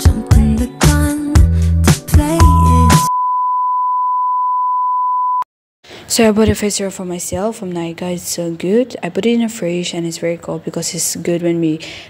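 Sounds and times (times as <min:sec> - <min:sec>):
steady test tone beep: 0:02.4 - 0:05.5.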